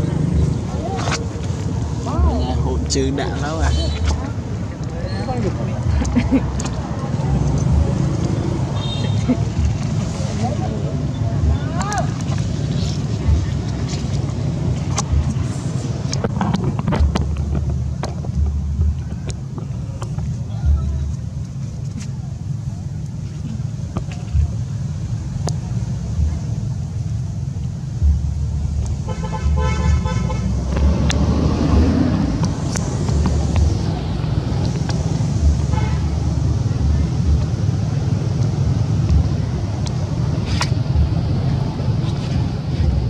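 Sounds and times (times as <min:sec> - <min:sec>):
low rumble: 0:00.0 - 0:43.0
vehicle horn tooting: 0:29.1 - 0:30.5, 0:35.7 - 0:36.1.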